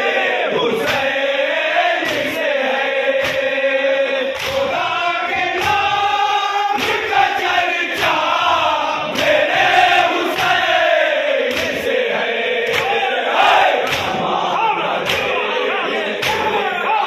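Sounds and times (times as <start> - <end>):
men chanting in unison: 0.0 - 17.0
chest-beating slaps: 0.8 - 1.2, 2.0 - 2.4, 3.1 - 3.6, 4.3 - 4.8, 6.8 - 7.2, 9.1 - 9.5, 11.4 - 11.9, 12.6 - 13.1, 13.7 - 14.4, 15.0 - 15.4, 16.2 - 16.6.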